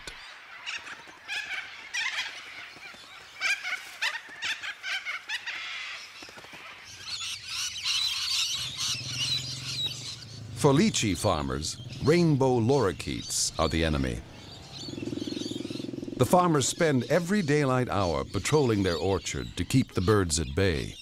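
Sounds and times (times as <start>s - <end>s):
lorikeets chattering: 0.3s - 21.0s.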